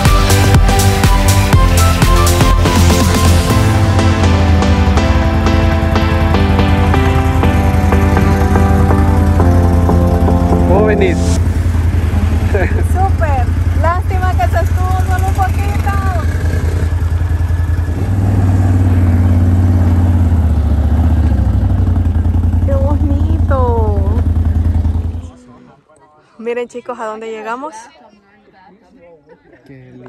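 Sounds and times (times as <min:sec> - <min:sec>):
background music: 0:00.0 - 0:13.1
atv engine idling: 0:04.6 - 0:25.6
voices: 0:10.7 - 0:17.0, 0:22.6 - 0:30.0.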